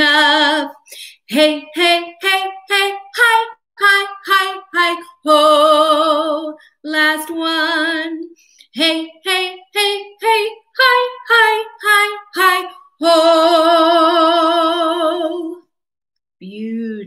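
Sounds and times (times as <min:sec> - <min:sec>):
woman singing vocal warm-up scale: 0:00.0 - 0:15.8.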